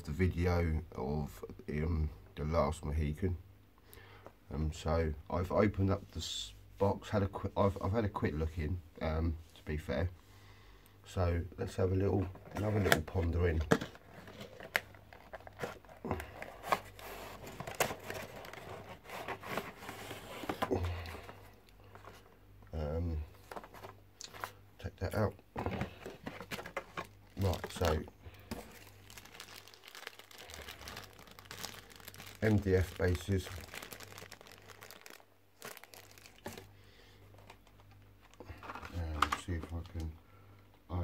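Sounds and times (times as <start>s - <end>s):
plastic crinkling: 12.2s - 22.2s, 25.6s - 40.0s
cardboard scraping: 15.4s - 20.8s.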